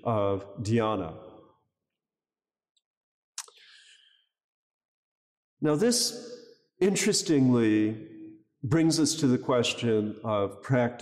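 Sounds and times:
man speaking: 0.0 - 1.2, 5.6 - 6.2, 6.8 - 8.0, 8.6 - 11.0.

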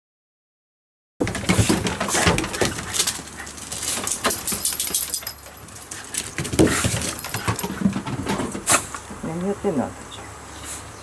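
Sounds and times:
paws clicking on wooden deck: 1.2 - 8.7.

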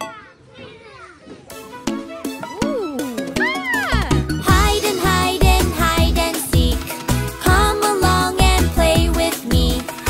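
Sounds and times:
bright children's song music: 1.5 - 10.0.

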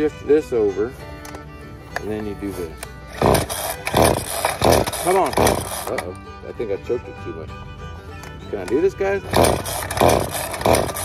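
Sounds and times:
recoil starter cord pulls: 2.0 - 6.2, 8.2 - 11.0.

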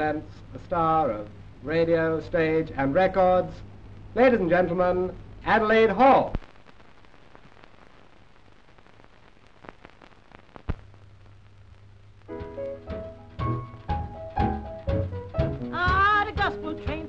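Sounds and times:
old film soundtrack hiss: 0.0 - 17.0
swing dance band playing: 12.3 - 17.0.

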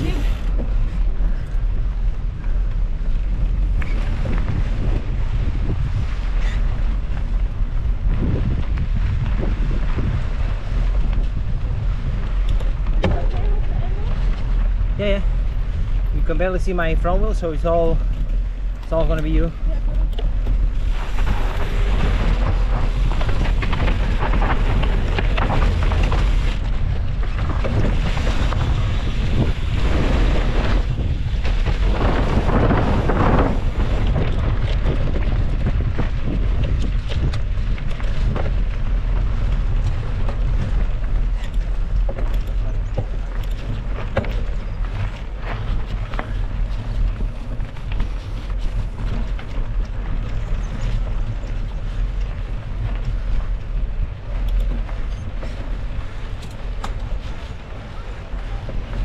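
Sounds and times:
bike rattling: 0.0 - 59.0
wind buffeting microphone: 0.0 - 59.0.

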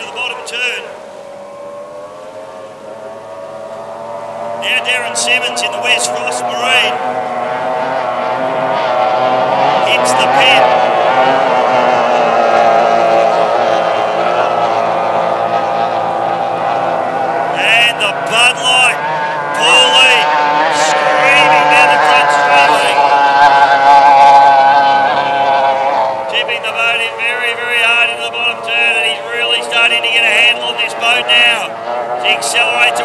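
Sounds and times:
racing outboard motors droning: 0.0 - 33.0.

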